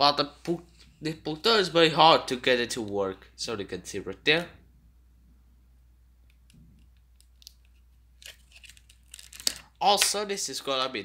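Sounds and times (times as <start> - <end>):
low steady hum: 0.0 - 9.8.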